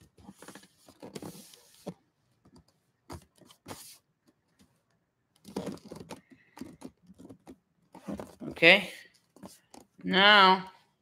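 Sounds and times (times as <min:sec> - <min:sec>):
light handling clicks and rustles: 0:00.0 - 0:08.5.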